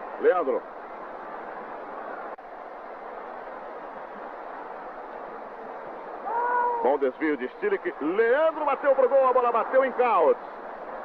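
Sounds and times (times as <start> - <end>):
stadium crowd roaring: 1.2 - 11.0.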